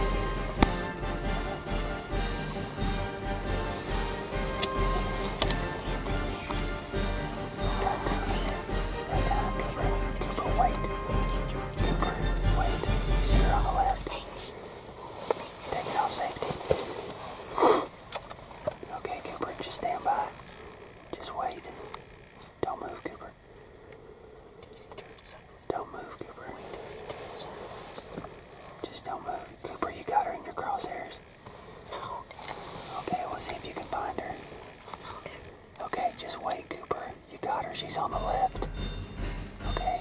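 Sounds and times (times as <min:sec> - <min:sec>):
hushed whispering voices: 0:00.0 - 0:02.2, 0:03.8 - 0:16.6, 0:18.8 - 0:23.5, 0:24.4 - 0:38.7, 0:39.7 - 0:40.0
background music: 0:00.0 - 0:14.4, 0:37.9 - 0:40.0.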